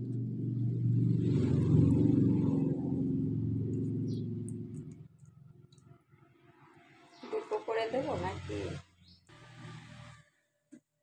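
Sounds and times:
low rumble: 0.0 - 5.6.

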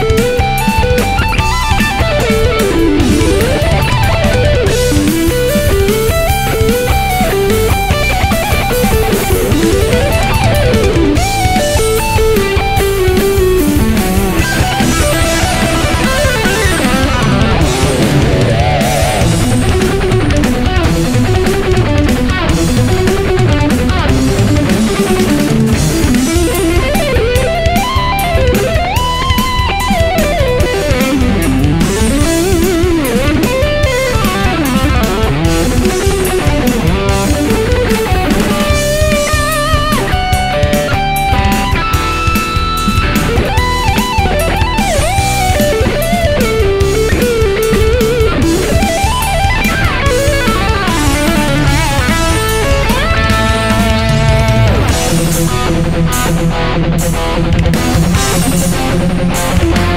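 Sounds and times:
distorted electric guitar lead: 0.0 - 59.9
heavy metal drums and bass: 0.0 - 59.9.

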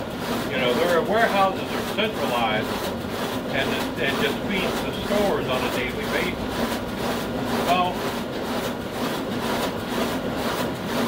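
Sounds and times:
printing press humming with pulse: 0.0 - 11.0.

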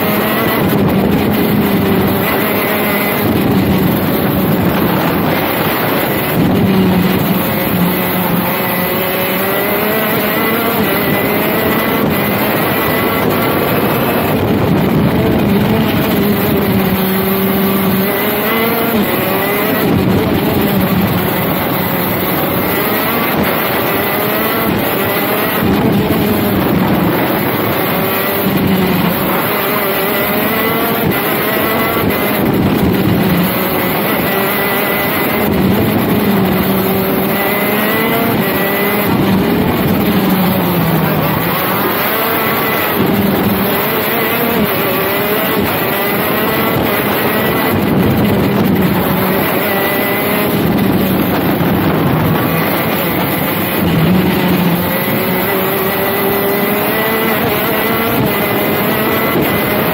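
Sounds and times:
kart engine racing: 0.0 - 59.9.

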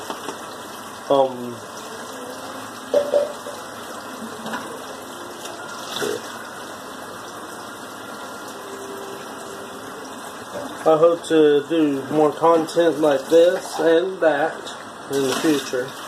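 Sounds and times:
tap water running: 0.0 - 16.0.

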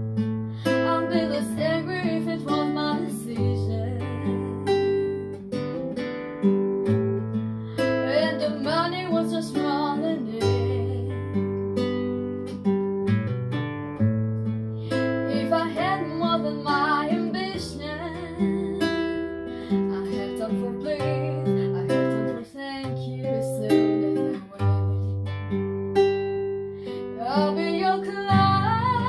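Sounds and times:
acoustic guitar picked chords: 0.0 - 29.0
woman singing: 0.6 - 5.4, 7.8 - 11.6, 14.9 - 25.2, 26.9 - 29.0.

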